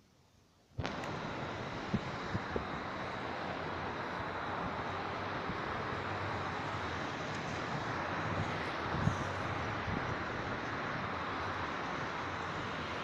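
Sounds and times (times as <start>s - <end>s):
traffic on wet road: 0.8s - 13.0s.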